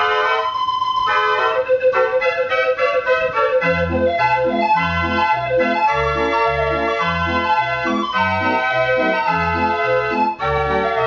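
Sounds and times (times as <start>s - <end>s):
street organ playing: 0.0s - 11.0s.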